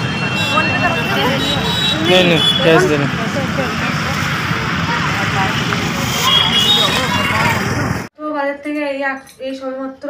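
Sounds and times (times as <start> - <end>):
traffic rumble: 0.0 - 8.1
many voices talking: 0.4 - 8.9.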